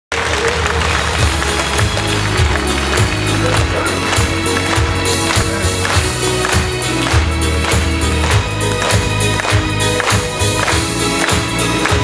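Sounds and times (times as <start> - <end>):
pop song instrumental intro: 0.3 - 12.0.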